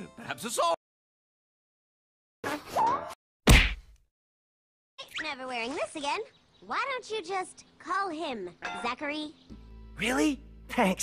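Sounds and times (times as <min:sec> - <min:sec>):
cartoon whack sound effect: 0:02.4 - 0:03.9.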